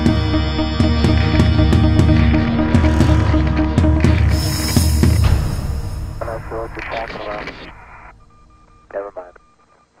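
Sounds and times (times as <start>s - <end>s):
faint beeping tones: 4.3s - 10.0s.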